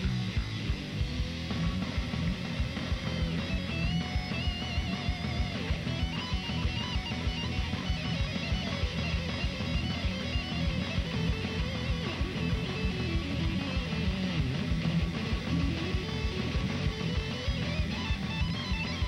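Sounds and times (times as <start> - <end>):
drums with fast kick beat: 0.0 - 19.0
electric guitars lead line: 0.0 - 19.0.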